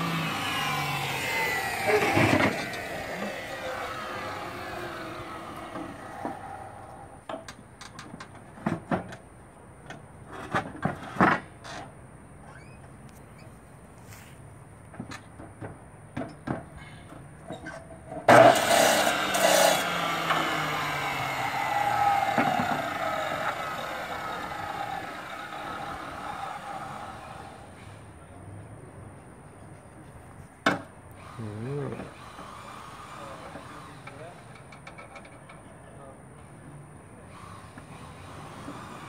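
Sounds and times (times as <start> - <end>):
chop saw cutting metal: 0.0 - 6.9, 18.3 - 27.6, 31.2 - 34.6.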